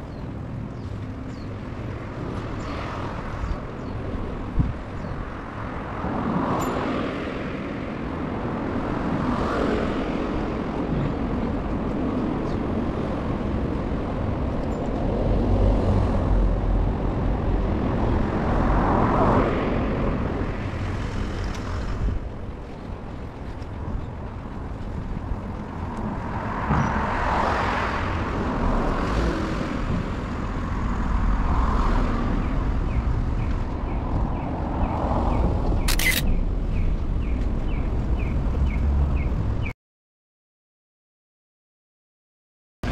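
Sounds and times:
cars passing: 0:00.0 - 0:39.7
low traffic rumble: 0:00.0 - 0:39.7.

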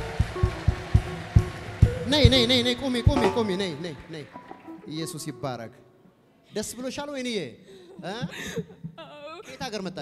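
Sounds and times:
steady drum beat: 0:00.0 - 0:04.3
church band music: 0:00.0 - 0:06.2.

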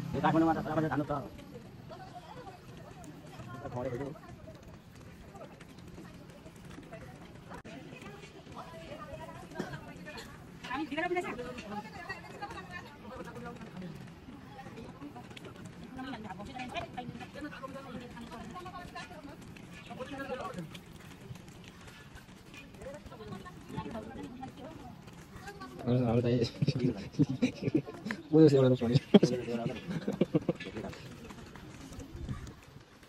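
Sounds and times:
faint voices talking: 0:00.0 - 0:33.0
outdoor background noise: 0:00.0 - 0:33.0.

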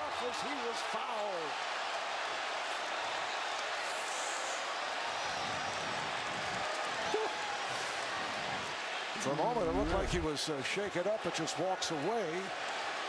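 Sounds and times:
arena crowd hubbub: 0:00.0 - 0:13.0.

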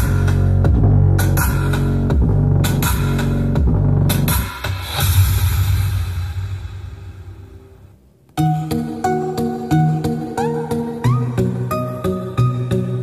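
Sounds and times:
bass-heavy music with drum beat: 0:00.0 - 0:06.5.

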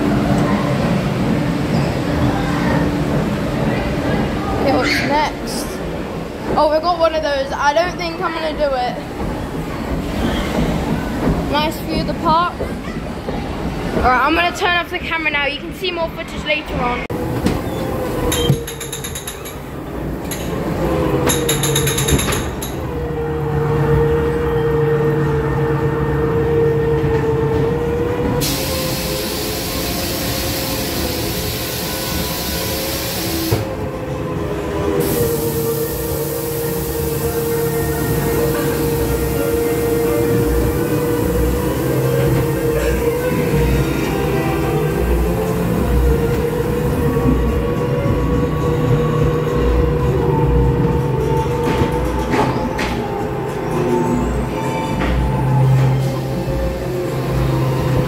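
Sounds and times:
ride car rumbling on track: 0:00.0 - 0:58.0
loud hiss: 0:28.4 - 0:33.7.

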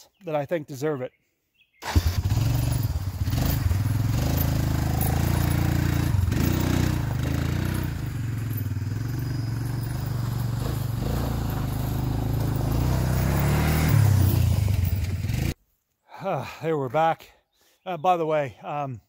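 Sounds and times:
quad bike engine running: 0:01.9 - 0:15.6.

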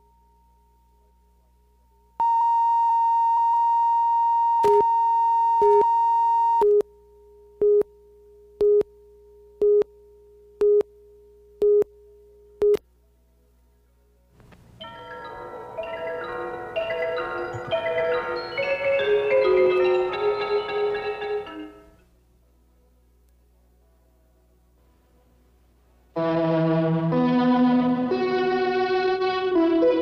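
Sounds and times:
lower-pitched countdown beeps: 0:07.6 - 0:07.9, 0:08.6 - 0:08.9, 0:09.6 - 0:09.9, 0:10.6 - 0:10.9, 0:11.6 - 0:11.9, 0:12.6 - 0:12.8
steady high tone: 0:14.8 - 0:22.0.

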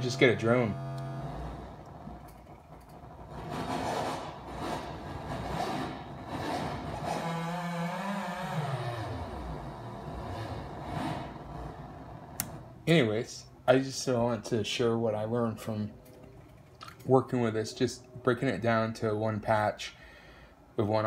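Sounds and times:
synthesizer drone: 0:00.0 - 0:12.2.

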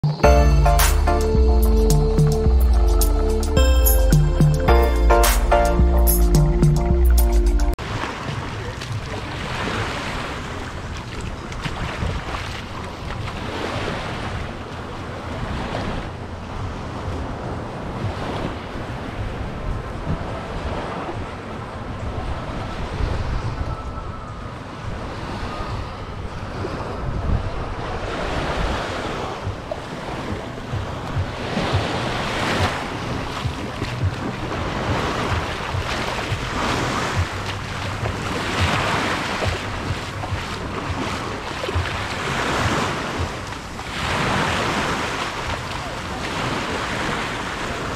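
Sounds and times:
waves lapping on sandy shore: 0:07.8 - 0:23.5, 0:27.6 - 0:47.9
wind rumbling on microphone: 0:07.8 - 0:47.9.

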